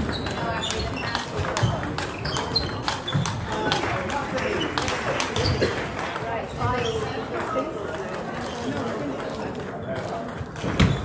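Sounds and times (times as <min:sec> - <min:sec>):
table tennis balls clicking: 0:00.0 - 0:11.0.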